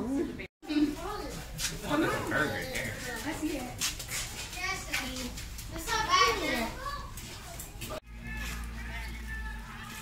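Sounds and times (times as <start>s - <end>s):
children's voices chattering: 0.6s - 8.0s.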